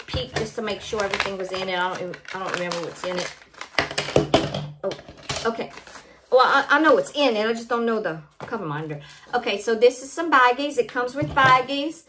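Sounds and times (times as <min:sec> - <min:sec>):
plastic pouch rustling: 0:00.0 - 0:04.3, 0:05.1 - 0:06.3.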